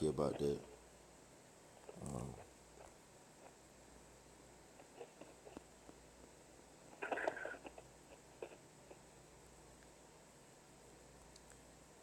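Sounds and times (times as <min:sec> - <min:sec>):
man saying um: 0:00.0 - 0:00.6, 0:02.0 - 0:02.4.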